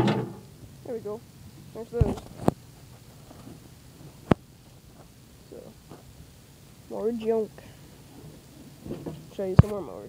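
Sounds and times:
faint handling noise: 1.9 - 6.1, 8.1 - 10.0.

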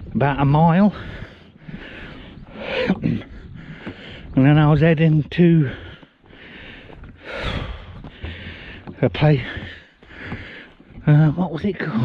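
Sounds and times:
man breathing heavily: 0.8 - 4.4, 5.3 - 11.1.

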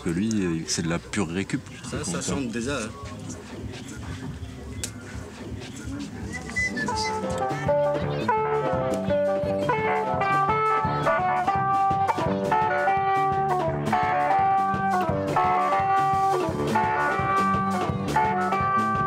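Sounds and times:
bass line: 2.2 - 19.0
band over horn loudspeakers: 5.2 - 19.0
fast electric guitar melody: 6.7 - 19.0.

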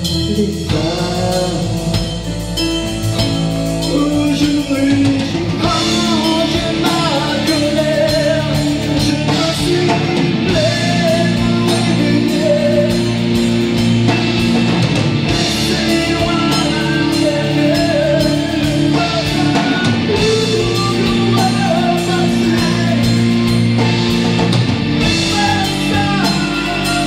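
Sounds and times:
rock band playing: 0.0 - 27.0.

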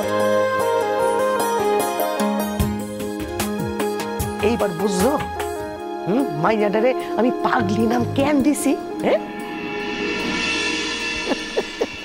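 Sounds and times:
shimmering held chord music: 0.0 - 12.0.

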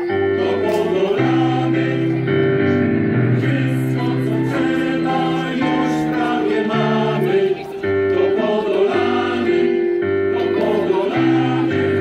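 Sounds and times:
male choir singing chords: 0.0 - 12.0.

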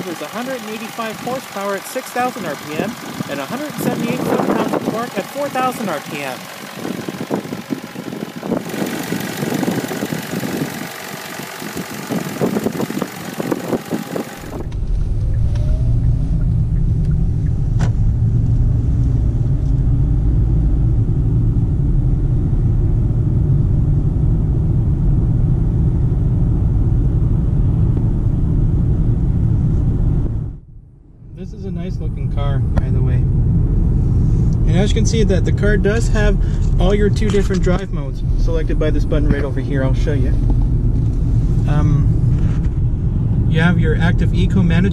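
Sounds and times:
car engine idling with ticking: 0.0 - 23.6, 34.3 - 44.9
engine and road noise inside car: 0.0 - 31.1, 31.7 - 44.9.

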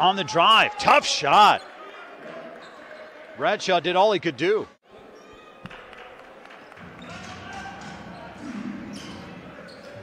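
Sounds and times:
players' voices: 0.0 - 5.2.

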